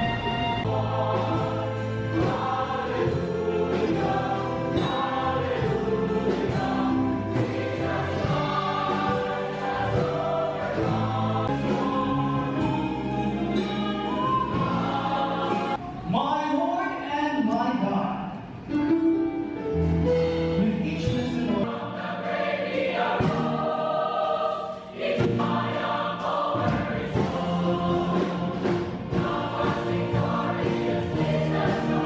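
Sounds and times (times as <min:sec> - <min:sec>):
mixed choir singing: 0:00.0 - 0:15.8, 0:21.6 - 0:32.0.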